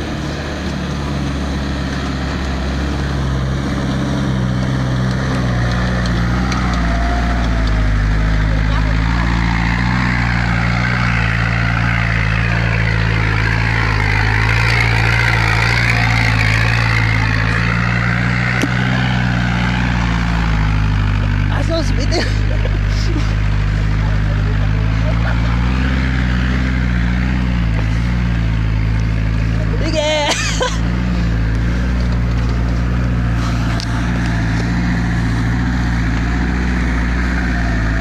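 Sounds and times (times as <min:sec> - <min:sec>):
van engine driving on dirt: 0:00.0 - 0:38.0.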